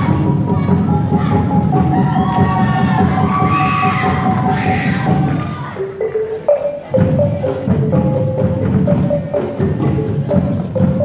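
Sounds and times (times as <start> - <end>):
dense low rhythm: 0.0 - 11.0
rising and falling melody line: 0.9 - 11.0.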